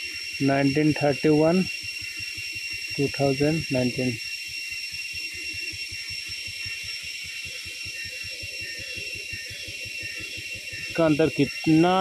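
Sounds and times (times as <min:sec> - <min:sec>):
high-pitched whine: 0:00.0 - 0:12.0.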